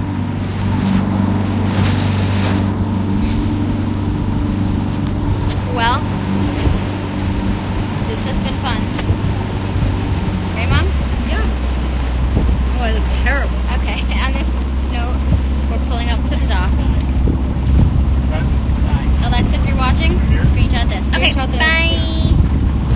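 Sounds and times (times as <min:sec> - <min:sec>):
motorboat engine droning: 0:00.0 - 0:22.9
wind buffeting microphone: 0:00.0 - 0:22.9.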